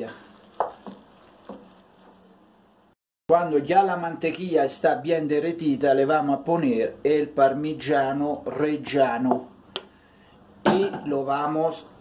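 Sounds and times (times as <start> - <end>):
wooden spoon stirring rice in pot: 0.0 - 2.4.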